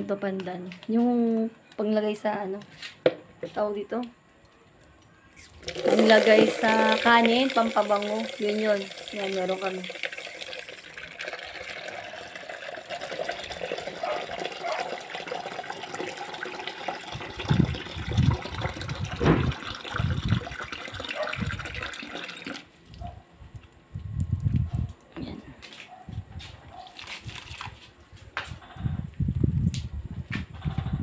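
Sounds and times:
water splashing onto plants: 4.0s - 14.1s, 26.9s - 27.9s.

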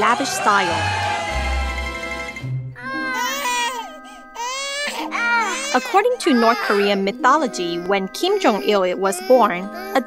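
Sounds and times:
newborn baby crying: 2.8s - 10.0s.

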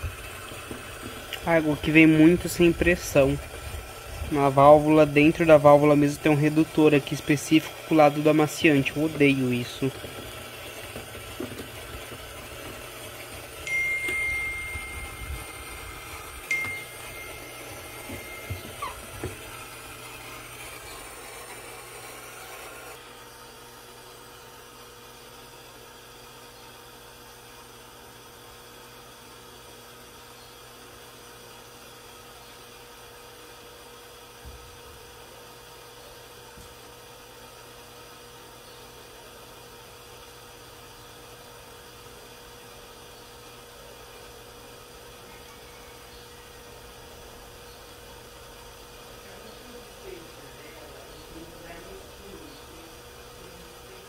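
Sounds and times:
water running into dispenser: 0.0s - 21.7s
faint steady hum: 13.6s - 19.0s
thin high whistle: 13.7s - 15.5s.

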